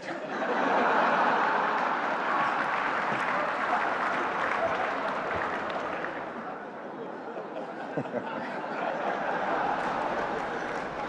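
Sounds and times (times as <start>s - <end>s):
audience applauding: 0.0s - 6.8s, 8.0s - 11.0s
audience laughing: 0.0s - 11.0s.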